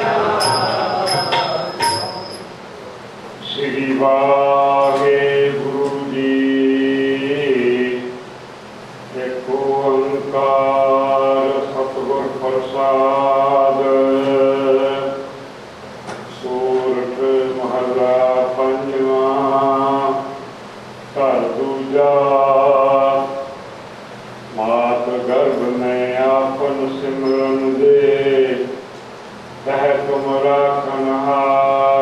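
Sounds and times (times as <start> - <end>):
man chanting: 3.4 - 8.2, 9.1 - 15.3, 16.3 - 20.4, 21.2 - 23.6, 24.5 - 28.8, 29.6 - 32.0.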